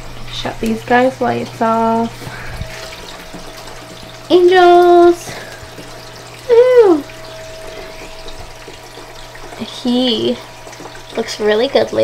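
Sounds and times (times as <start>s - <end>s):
pump hum: 0.0s - 12.0s
water trickling and splashing: 0.0s - 12.0s.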